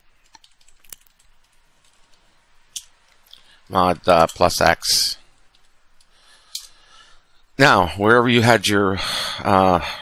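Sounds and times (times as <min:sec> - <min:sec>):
keyboard keystrokes clicking: 0:00.2 - 0:02.2.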